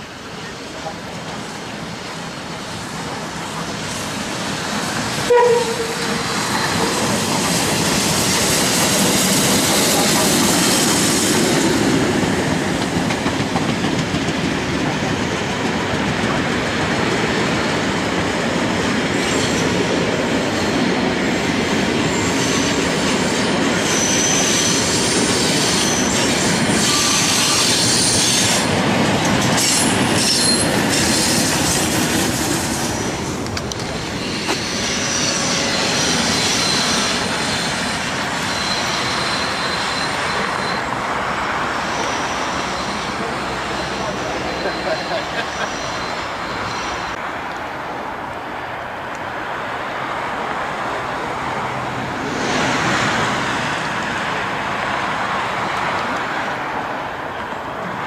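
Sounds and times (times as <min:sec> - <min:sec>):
train wheels clattering over rails: 0:00.8 - 0:46.1
train horn toot: 0:05.3 - 0:06.3
high wheel squeals: 0:23.8 - 0:28.7, 0:29.6 - 0:31.8, 0:34.1 - 0:47.2.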